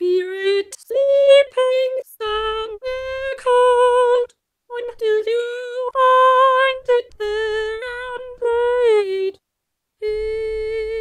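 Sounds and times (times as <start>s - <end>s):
synthesized female voice singing: 0.0s - 9.4s, 10.0s - 11.0s.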